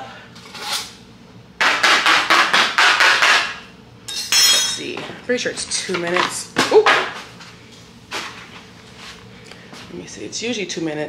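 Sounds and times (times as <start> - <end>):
rapid sharp knocks on hard surface: 1.6 - 3.6.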